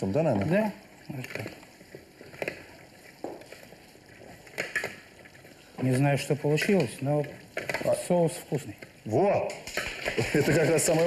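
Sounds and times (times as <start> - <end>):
utensils and dishes clattering: 9.4 - 11.0.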